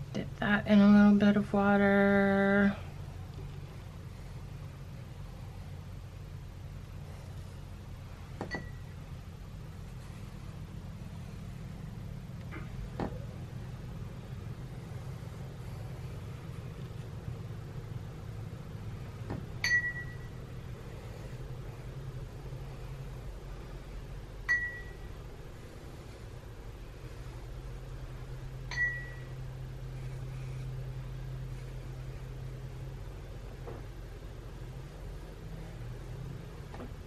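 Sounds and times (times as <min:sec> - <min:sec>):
low room hum: 0:00.0 - 0:37.0.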